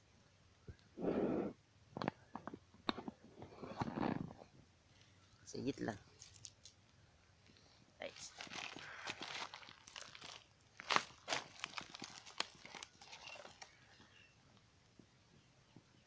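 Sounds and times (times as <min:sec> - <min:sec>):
dry reeds rustling and crackling: 0:04.9 - 0:14.6.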